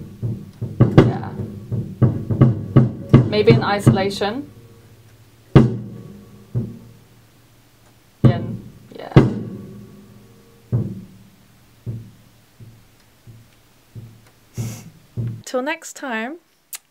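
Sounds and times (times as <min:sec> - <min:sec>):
acoustic drum hits: 0:00.0 - 0:07.3, 0:08.2 - 0:15.4.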